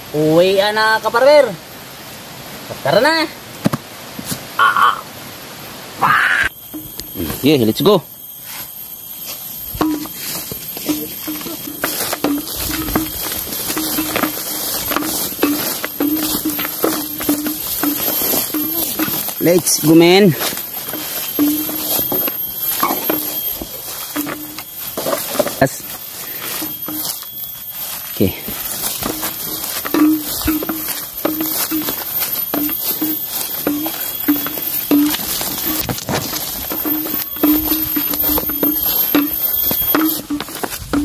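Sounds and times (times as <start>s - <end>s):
footsteps through grass and leaves: 6.6s - 41.0s.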